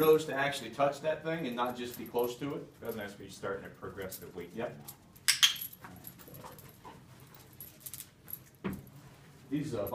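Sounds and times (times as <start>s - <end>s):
metal collar and lead jingling: 0.0s - 9.0s.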